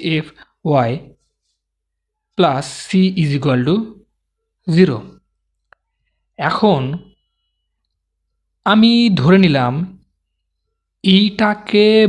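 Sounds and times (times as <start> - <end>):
man speaking: 0.0 - 1.2, 2.4 - 4.0, 4.6 - 5.2, 6.4 - 7.1, 8.6 - 10.0, 11.0 - 12.0.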